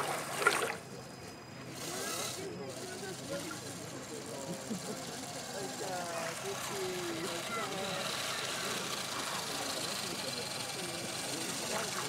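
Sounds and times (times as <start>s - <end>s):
distant indistinct voices: 0.0s - 12.0s.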